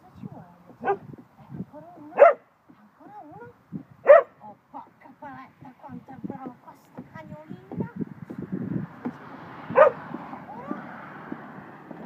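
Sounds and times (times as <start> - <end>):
large dog barking: 0.8 - 1.0, 2.1 - 2.4, 4.0 - 4.4, 9.7 - 10.0.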